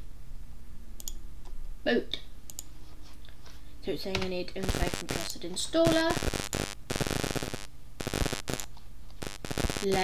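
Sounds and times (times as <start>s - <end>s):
steady electrical hum: 0.0s - 10.0s
sharp clicks: 1.0s - 1.2s, 5.8s - 10.0s
crackling microphone static: 3.9s - 10.0s.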